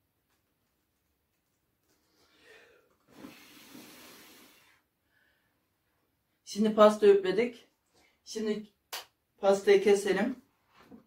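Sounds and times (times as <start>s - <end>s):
person blowing out candles: 3.1s - 4.8s.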